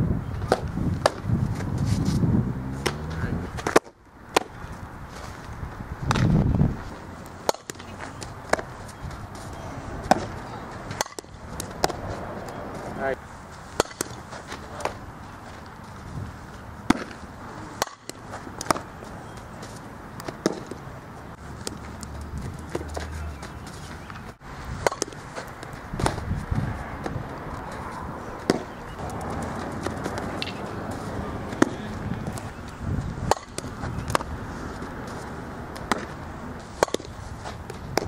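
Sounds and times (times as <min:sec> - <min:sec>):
outdoor background noise: 0:00.0 - 0:38.0
softball smacking bat or glove: 0:00.5 - 0:01.3, 0:02.1 - 0:04.6, 0:06.0 - 0:06.4, 0:07.4 - 0:08.7, 0:10.0 - 0:12.6, 0:13.7 - 0:15.0, 0:16.8 - 0:17.2, 0:17.8 - 0:18.9, 0:20.2 - 0:20.8, 0:24.8 - 0:26.3, 0:28.4 - 0:32.5, 0:33.2 - 0:34.4, 0:35.7 - 0:38.0.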